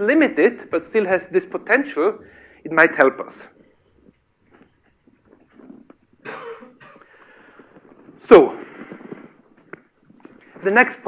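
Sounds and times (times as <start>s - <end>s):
person coughing: 6.2s - 7.1s.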